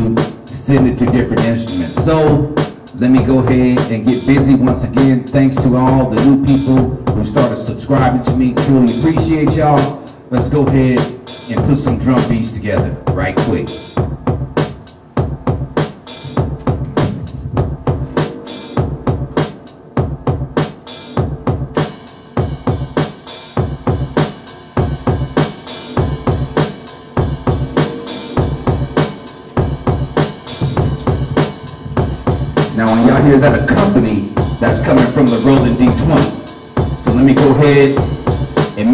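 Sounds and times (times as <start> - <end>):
drum machine beat: 0.0 - 38.9.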